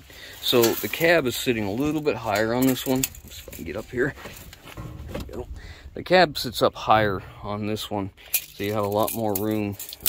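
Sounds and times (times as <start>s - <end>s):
rumble of movement: 1.0s - 8.9s
microphone handling: 3.0s - 7.6s.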